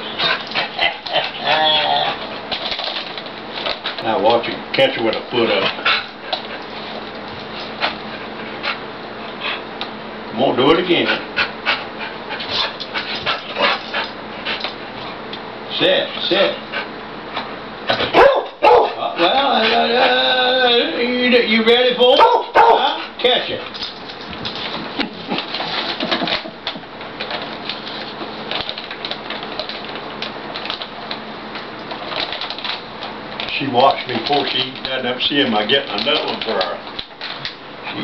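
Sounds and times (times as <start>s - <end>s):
dog panting: 0.0s - 2.5s, 5.3s - 9.7s, 10.8s - 15.2s, 16.5s - 17.5s
plastic bag crinkling: 24.0s - 37.5s.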